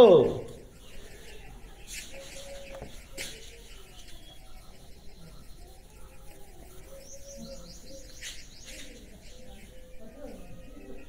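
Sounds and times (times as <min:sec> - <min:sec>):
faint bird chirps: 0:00.0 - 0:11.0.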